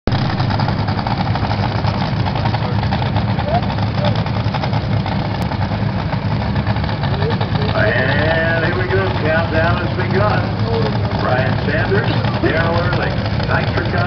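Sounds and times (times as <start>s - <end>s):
boat engines idling: 0.1s - 14.0s.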